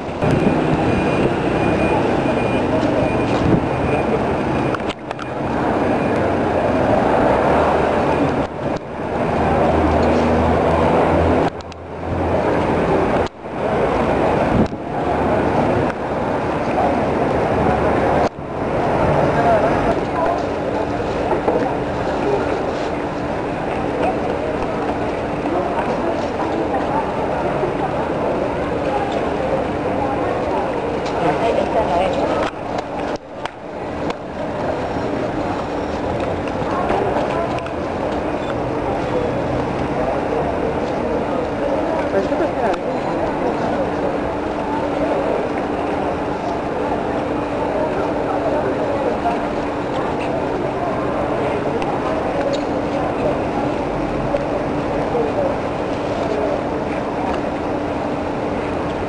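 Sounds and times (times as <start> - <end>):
crowd murmur: 0.0 - 59.0.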